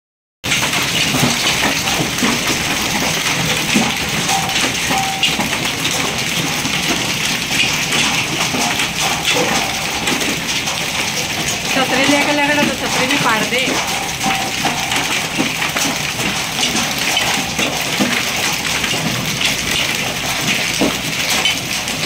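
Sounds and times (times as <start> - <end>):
hail and rain on pavement: 0.4 - 22.0.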